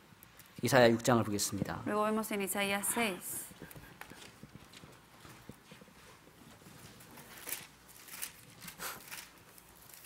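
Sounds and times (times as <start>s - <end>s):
book pages being leafed through: 5.5s - 10.0s.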